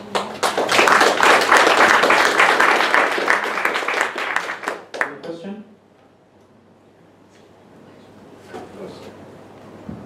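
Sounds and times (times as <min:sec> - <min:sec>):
audience applauding: 0:00.0 - 0:05.3.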